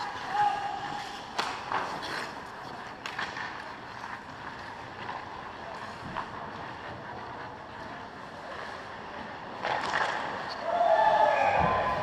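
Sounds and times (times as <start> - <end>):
distant hockey play: 0.0 - 12.0.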